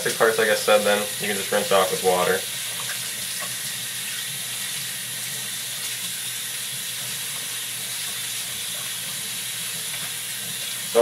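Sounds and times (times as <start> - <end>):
tap water splashing into sink: 2.0 - 4.8.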